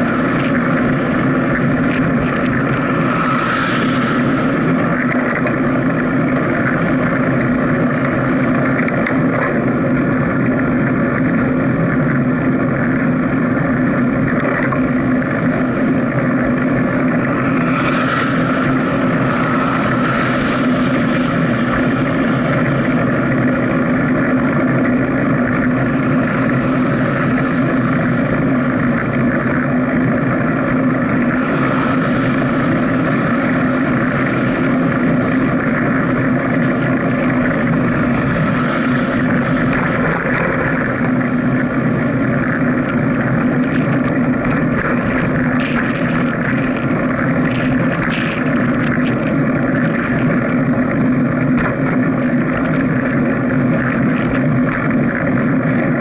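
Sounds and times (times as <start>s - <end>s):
cars passing: 0.0s - 56.0s
small motor droning: 0.0s - 56.0s.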